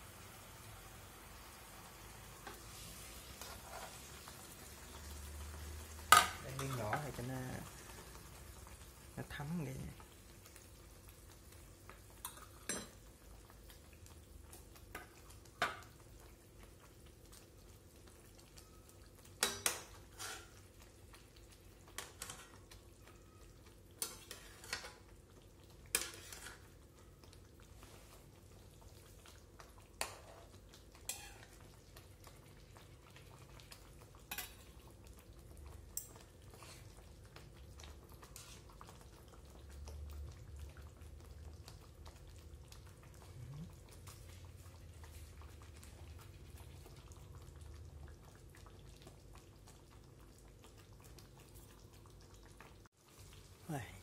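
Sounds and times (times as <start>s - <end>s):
eggs sizzling: 0.0s - 54.0s
spatula scraping a wok: 2.5s - 4.2s, 20.0s - 20.6s, 22.0s - 22.6s, 24.0s - 25.0s, 25.9s - 26.8s, 30.0s - 31.5s, 38.3s - 38.7s.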